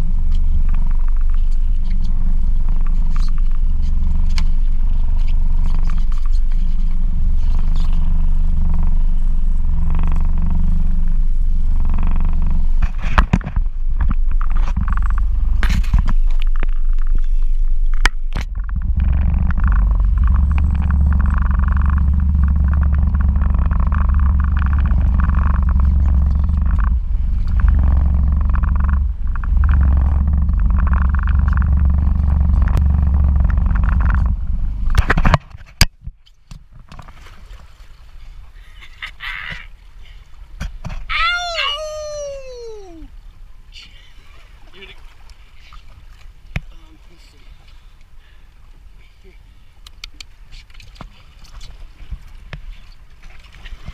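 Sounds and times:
wind buffeting microphone: 0.0 - 35.9.

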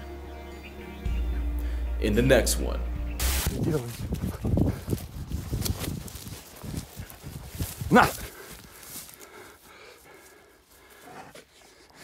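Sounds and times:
bear running through undergrowth: 3.6 - 11.3
man shouting: 7.9 - 8.2.

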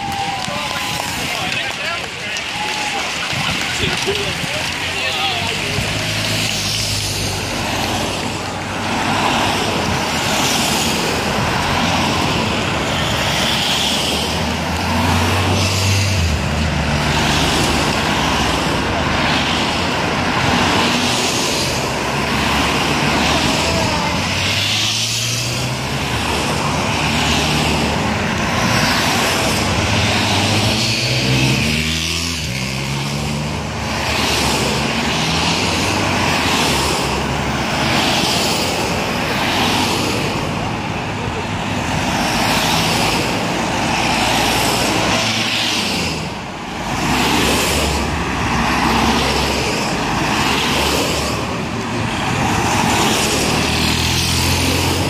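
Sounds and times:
cars driving past: 0.0 - 55.0.

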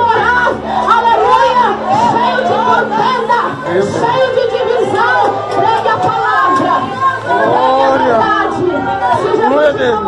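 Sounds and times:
woman speaking over loudspeaker: 0.0 - 10.0.

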